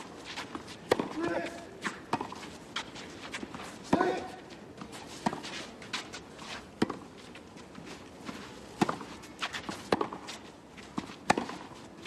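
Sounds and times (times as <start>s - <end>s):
shoes sliding on clay: 0.0s - 12.0s
rackets hitting tennis ball: 0.4s - 4.4s, 8.7s - 11.8s.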